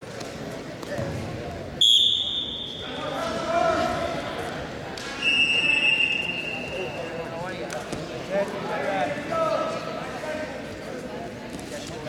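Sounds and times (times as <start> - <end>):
voices in a gym: 0.0 - 12.0
referee's whistle blast: 1.8 - 2.8, 5.2 - 7.0.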